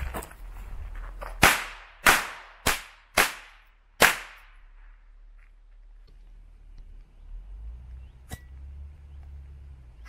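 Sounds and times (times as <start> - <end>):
firecracker bangs: 1.4 - 4.6.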